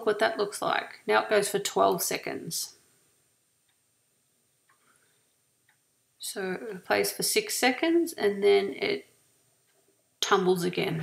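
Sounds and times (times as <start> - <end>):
faint ticks: 4.6 - 5.8.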